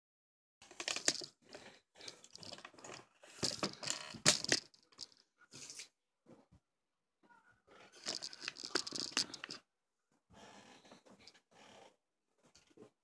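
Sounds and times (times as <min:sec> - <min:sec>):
phone handling rustling and bumping: 0:03.4 - 0:04.8.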